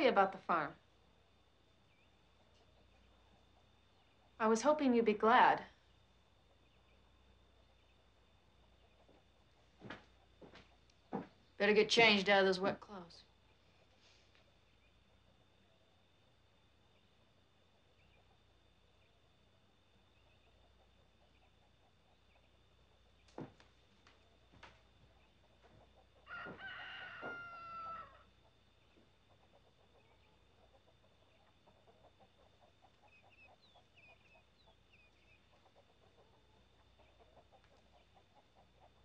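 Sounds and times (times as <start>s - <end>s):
faint bird chirps: 1.4s - 5.1s, 13.1s - 23.5s, 24.2s - 38.2s
rooster crowing: 26.2s - 28.3s.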